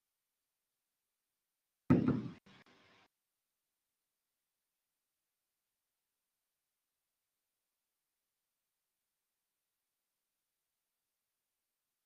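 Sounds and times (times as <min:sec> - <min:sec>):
dull knock: 0:01.9 - 0:02.4.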